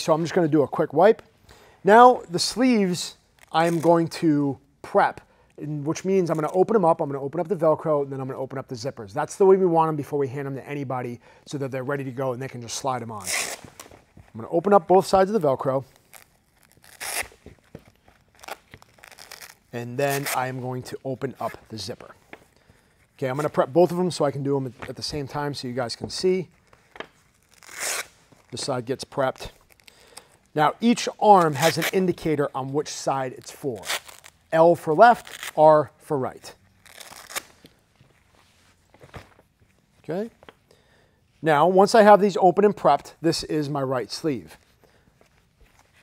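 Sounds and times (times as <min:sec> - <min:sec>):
velcro strap ripping open: 0:03.1 - 0:04.2, 0:13.2 - 0:14.1, 0:15.3 - 0:20.6, 0:26.5 - 0:32.3, 0:33.4 - 0:35.6, 0:36.4 - 0:37.9
fabric handling on table: 0:37.6 - 0:40.6.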